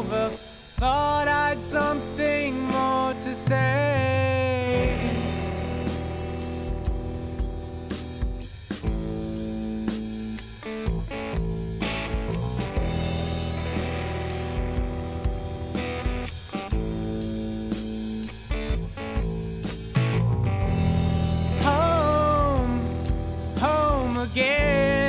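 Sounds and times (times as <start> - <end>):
bass: 0.0 - 25.0
drum kit beat: 0.0 - 25.0
electric guitar chords: 0.0 - 25.0.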